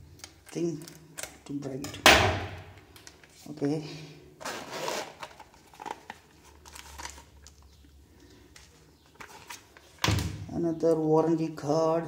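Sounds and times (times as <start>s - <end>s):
zipper being drawn open: 4.4s - 5.2s.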